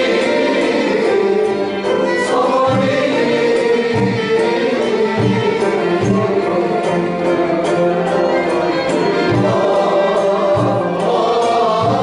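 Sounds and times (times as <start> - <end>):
group of voices singing: 0.0 - 12.0
instrumental ensemble: 0.0 - 12.0.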